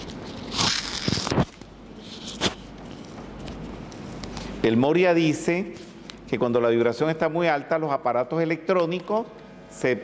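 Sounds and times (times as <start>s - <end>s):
microphone crackling and rustling: 0.0s - 4.3s.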